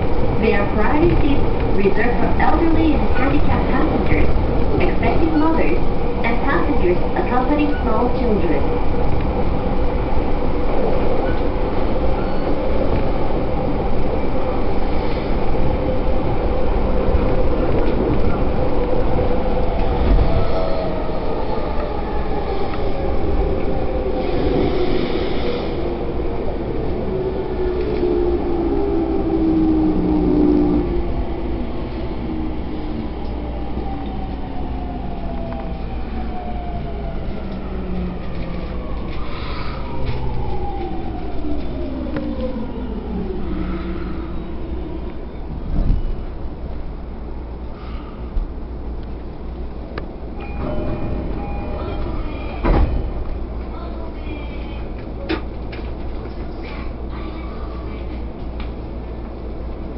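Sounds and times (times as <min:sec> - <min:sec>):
train rumbling: 0:00.0 - 0:59.9.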